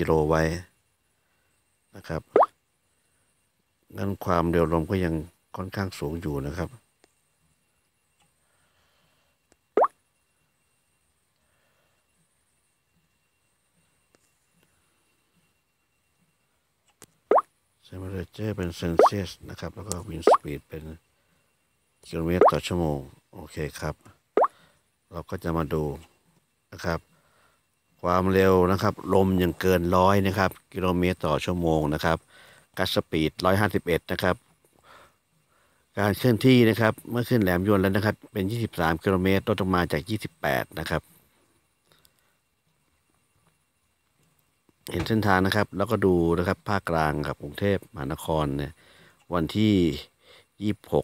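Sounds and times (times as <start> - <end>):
man speaking: 0.0 - 0.7, 2.0 - 2.5, 3.9 - 6.8, 17.8 - 21.0, 22.1 - 24.0, 25.1 - 26.1, 26.7 - 27.0, 28.0 - 32.2, 36.0 - 41.0, 44.9 - 51.0.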